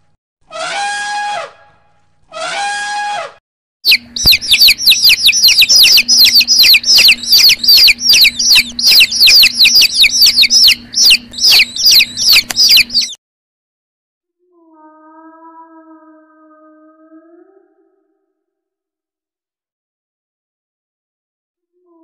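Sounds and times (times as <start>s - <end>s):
elephant trumpeting: 2.3s - 3.4s
baby chicks peeping: 3.8s - 13.2s
faint low hum: 3.9s - 13.2s.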